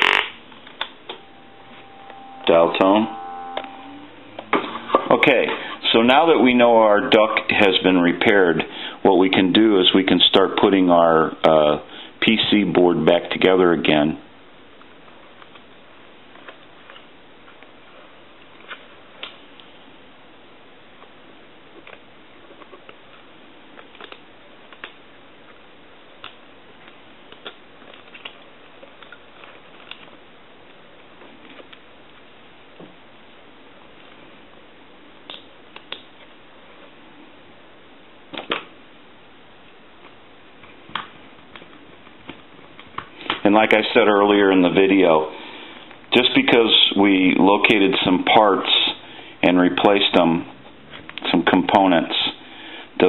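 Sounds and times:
faint steady hiss: 0.0s - 53.0s.

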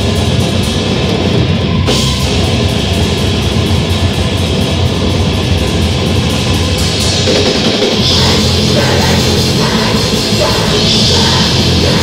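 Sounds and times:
distorted electric guitar: 0.0s - 12.0s
fast drums: 0.0s - 12.0s.

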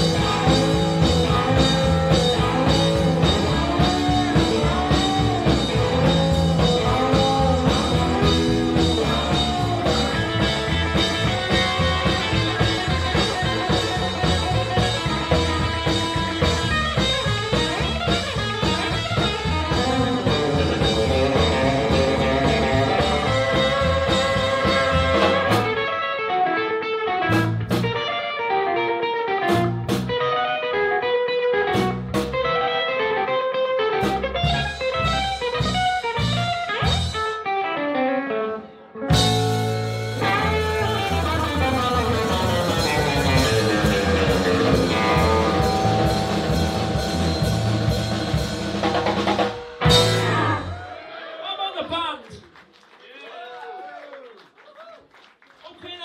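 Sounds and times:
drum kit: 0.0s - 25.9s, 27.3s - 28.1s, 29.4s - 30.3s, 31.6s - 32.6s, 33.9s - 37.4s, 39.1s - 51.0s
electric guitar lead: 0.0s - 50.9s
blues band playing: 0.0s - 51.1s.

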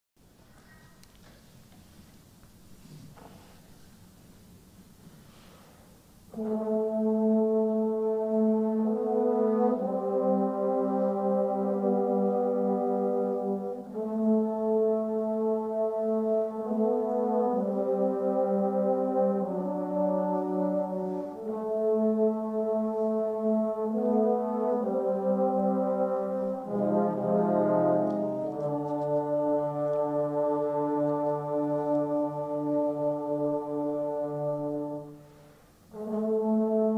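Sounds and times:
trombone choir playing chords: 6.3s - 36.9s.

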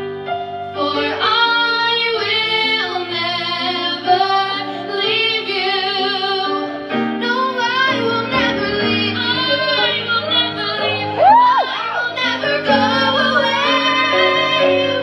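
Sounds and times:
piano accompaniment: 0.0s - 15.0s
women singing a duet: 0.8s - 15.0s.

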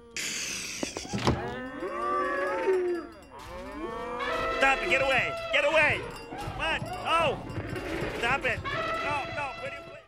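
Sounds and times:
cow puppets mooing: 1.3s - 9.9s.

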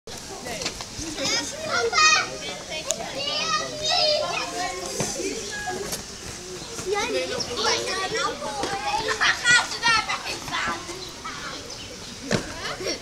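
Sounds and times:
children talking and calling out: 0.1s - 13.0s.

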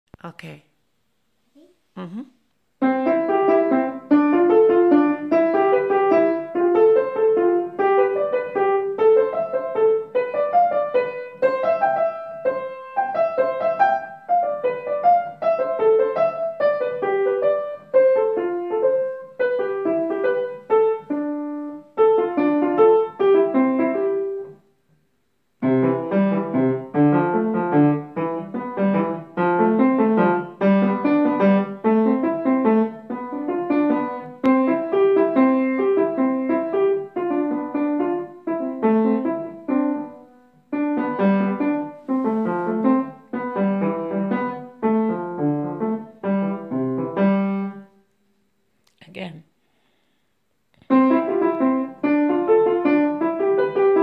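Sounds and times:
child playing piano: 2.8s - 24.6s, 25.6s - 47.9s, 50.9s - 54.0s.

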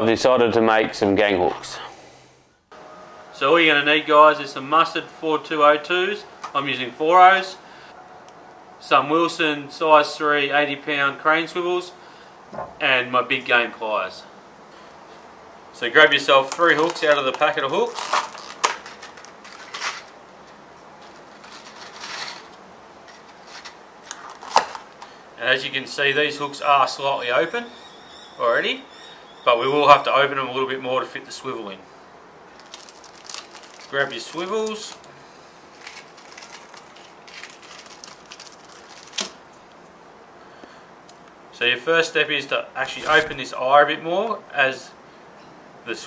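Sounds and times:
plastic box rustling: 16.4s - 25.1s, 32.5s - 35.1s, 35.7s - 39.4s, 42.9s - 43.4s.

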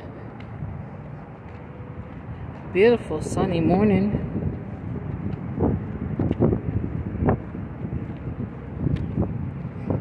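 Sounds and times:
low rumble of traffic: 0.0s - 10.0s
wind buffeting microphone: 0.0s - 10.0s.

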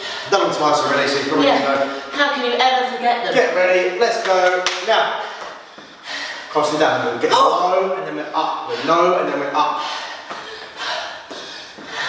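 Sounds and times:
heavy breathing: 0.0s - 0.5s, 5.2s - 6.6s, 8.2s - 12.0s.

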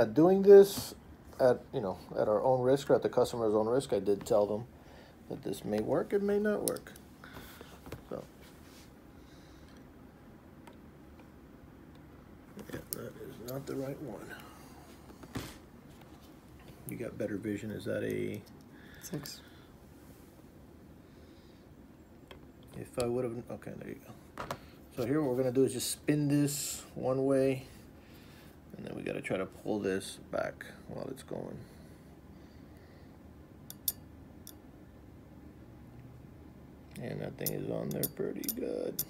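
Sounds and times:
small metal clicks: 33.7s - 34.6s, 36.9s - 39.0s.

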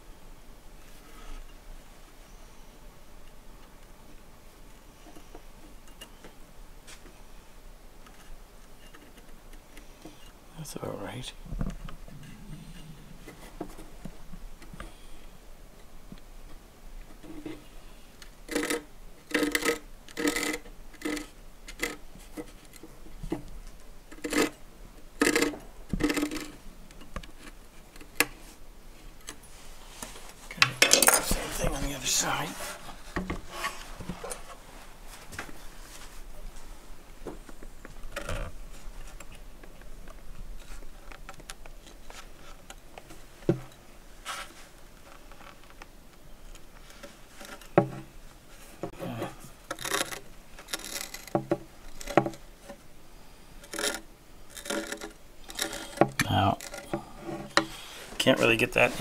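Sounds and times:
small clicks and knocks: 49.7s - 52.8s, 53.6s - 57.8s.

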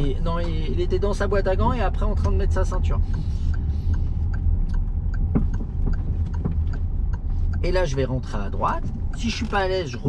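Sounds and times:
car engine and road rumble: 0.0s - 10.0s
turn indicator ticking: 0.0s - 10.0s.

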